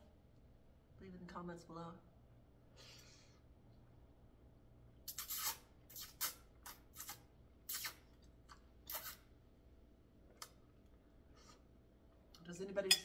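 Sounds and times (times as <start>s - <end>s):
person slurping noodles: 5.1s - 8.0s.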